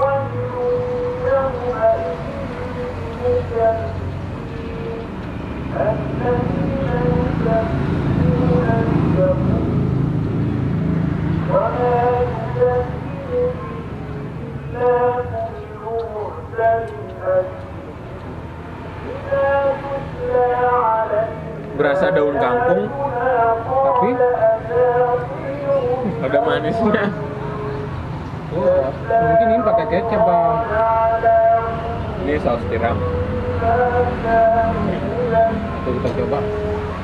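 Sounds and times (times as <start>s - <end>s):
passing vehicle rumble: 0.0s - 37.0s
indistinct voices: 11.2s - 37.0s.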